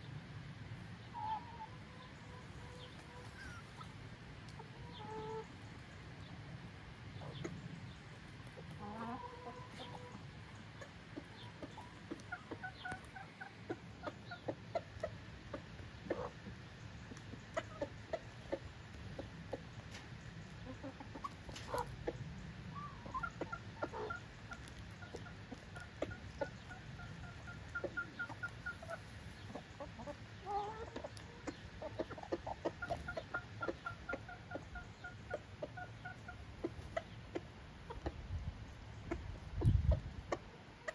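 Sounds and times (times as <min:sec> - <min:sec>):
chickens clucking: 0:00.0 - 0:40.9.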